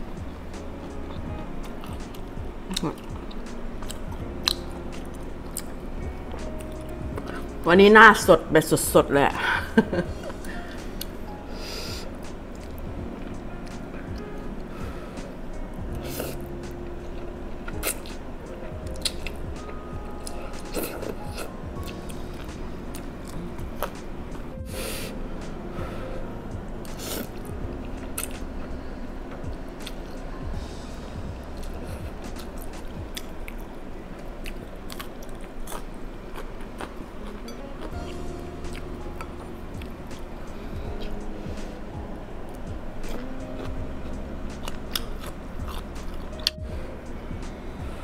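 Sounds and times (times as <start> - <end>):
person chewing noodles: 18.9 - 19.4, 26.2 - 28.4, 31.4 - 41.2, 44.6 - 46.5
sharp hissing intake of breath: 24.7 - 25.2.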